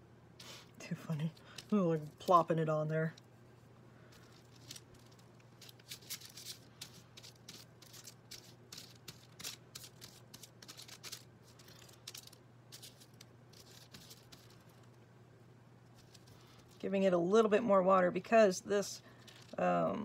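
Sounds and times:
steady low hum: 0:00.0 - 0:20.0
paper rustling: 0:04.1 - 0:14.9, 0:15.9 - 0:16.8, 0:19.0 - 0:19.6
paintbrush scratching on cardboard: 0:12.8 - 0:14.6.

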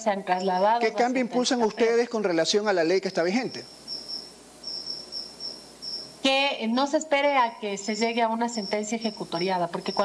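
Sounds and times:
insect chirping: 0:00.4 - 0:00.9, 0:03.1 - 0:10.0.

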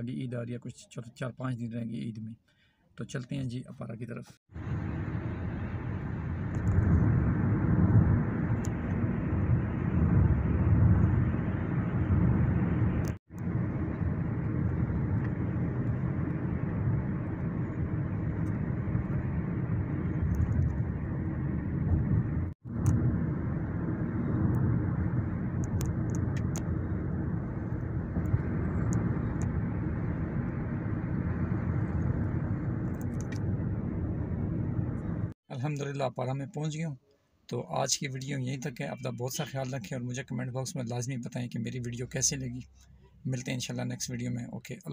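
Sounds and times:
car road noise on wet road: 0:04.6 - 0:35.3.

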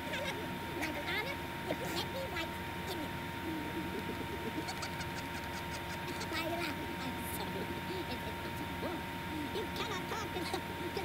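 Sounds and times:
faint cartoon voices: 0:00.0 - 0:11.0.

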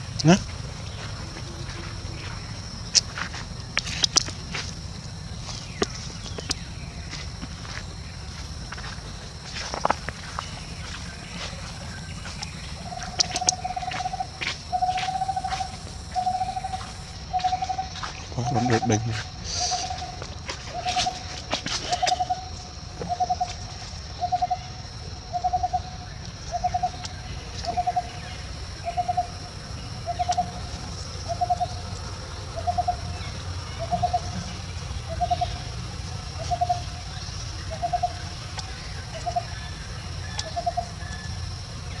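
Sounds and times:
bird calling pulsed note: 0:10.3 - 0:35.7.

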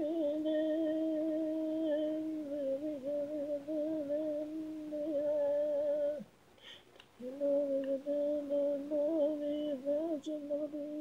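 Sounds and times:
intake of breath: 0:06.6 - 0:07.0.

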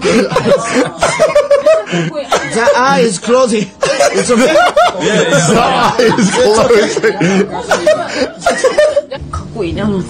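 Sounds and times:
people laughing: 0:00.0 - 0:03.0, 0:03.6 - 0:09.2.

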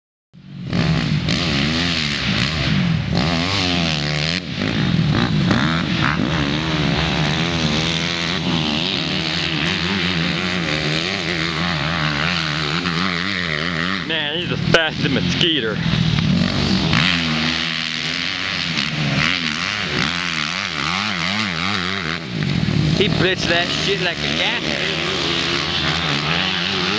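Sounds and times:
dirt bike engine revving: 0:00.4 - 0:26.9.

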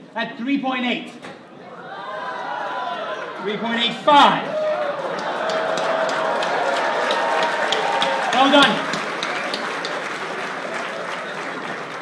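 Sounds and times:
audience applauding: 0:04.6 - 0:12.0.

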